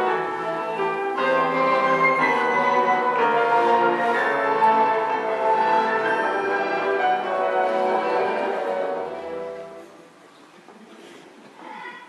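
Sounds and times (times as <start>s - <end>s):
orchestral music: 0.0s - 10.2s.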